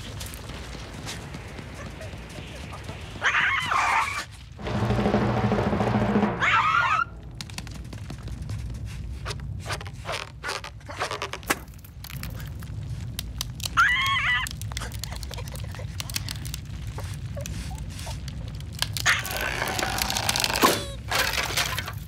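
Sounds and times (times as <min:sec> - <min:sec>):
long cracking crunching noise: 0:00.0 - 0:04.9, 0:07.1 - 0:22.0.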